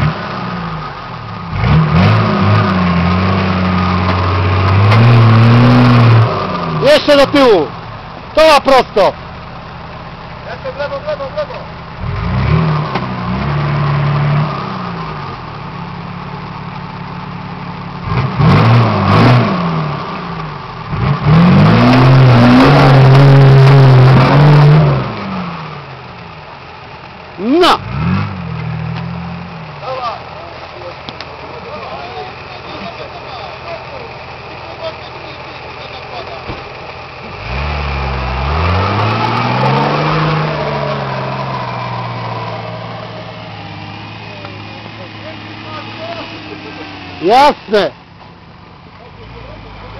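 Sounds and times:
diesel engine revving hard: 0.0 - 9.2, 10.1 - 15.6, 17.7 - 26.0, 26.6 - 49.9.

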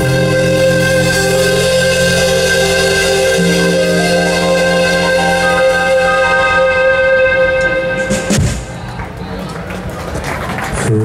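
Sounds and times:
rock band sustained chord: 0.0 - 8.8
drum hit: 8.0 - 8.8.

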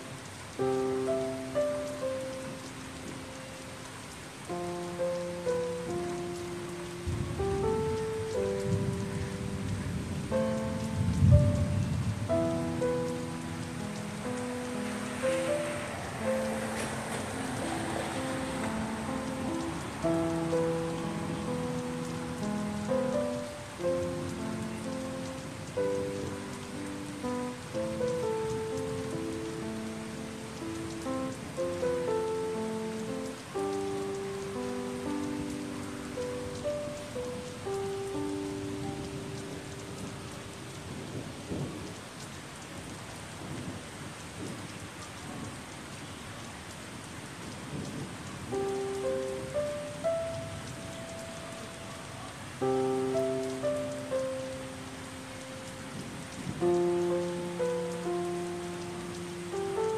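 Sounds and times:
slow calm solo piano: 0.0 - 42.3, 47.4 - 59.9
steady rain falling: 0.0 - 59.9.

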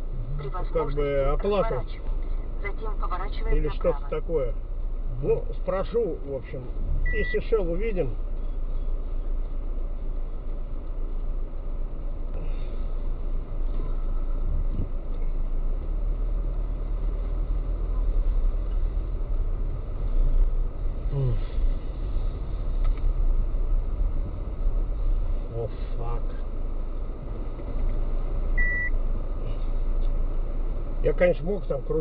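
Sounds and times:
car engine and road noise: 0.0 - 32.0
short electronic beep: 7.0 - 7.5, 28.6 - 29.0.

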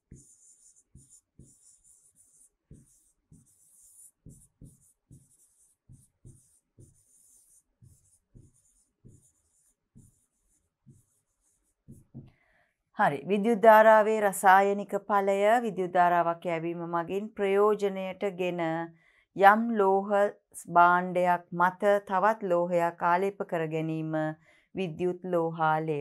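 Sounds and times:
pen writing on a board: 0.0 - 12.4.

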